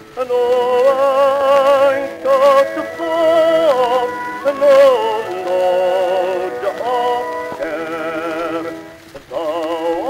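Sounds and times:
baritone singing a hymn: 0.0s - 10.0s
orchestra playing: 1.7s - 9.1s.

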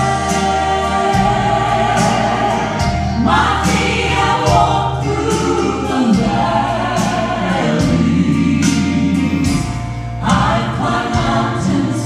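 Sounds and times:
gospel trio singing in harmony: 0.0s - 12.0s
instrumental accompaniment with bass: 0.0s - 12.0s.

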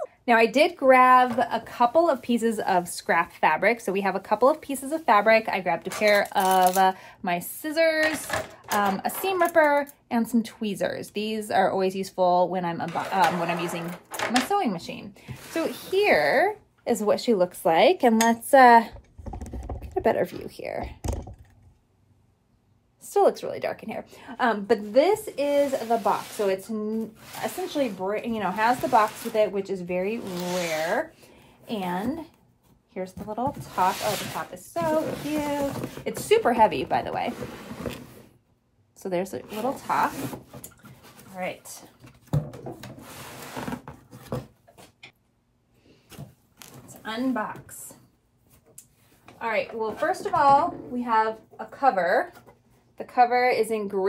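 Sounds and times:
cardboard box scraping rustle: 25.5s - 29.5s, 33.4s - 36.1s.

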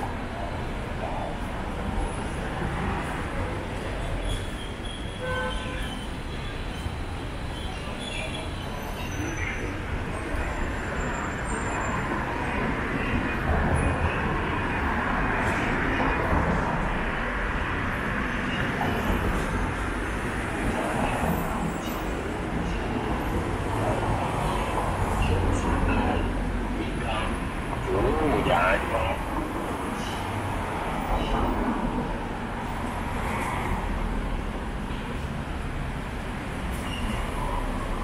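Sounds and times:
passing traffic rumble: 0.0s - 38.0s.

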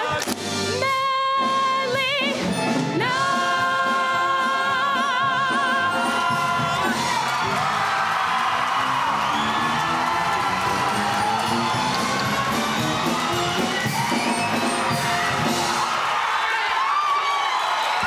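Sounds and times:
music playing: 0.0s - 16.1s
audience cheering and whooping: 5.2s - 18.0s
voices shouting: 6.0s - 18.0s.

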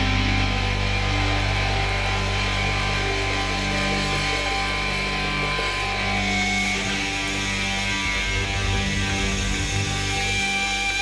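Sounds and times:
guitar and keyboard chords: 0.0s - 11.0s.

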